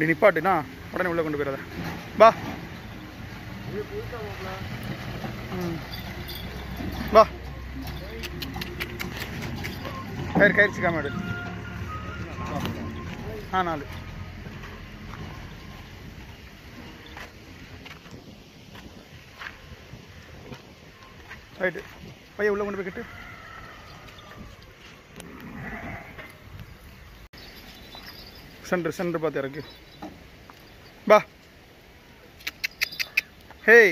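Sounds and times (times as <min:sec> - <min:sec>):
sheep bleating: 0:25.2 - 0:26.4.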